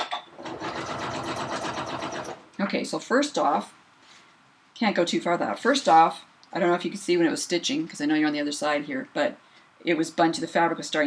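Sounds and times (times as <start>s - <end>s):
sewing machine running: 0.4s - 2.4s.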